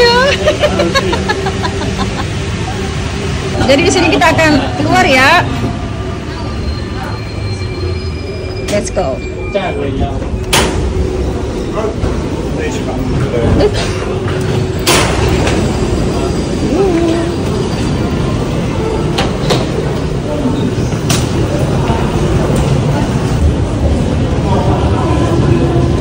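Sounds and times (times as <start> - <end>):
metro trains rumbling in tunnels: 0.0 - 26.0
people's voices: 0.0 - 26.0.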